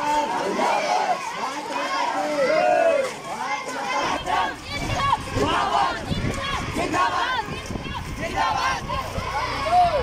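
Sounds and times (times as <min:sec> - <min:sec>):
boys calling out together: 0:00.0 - 0:10.0.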